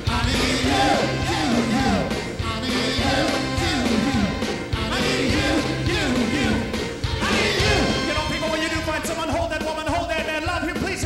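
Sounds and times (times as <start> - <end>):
person singing: 0.0 - 11.0
rhythm and blues band playing: 0.0 - 11.0.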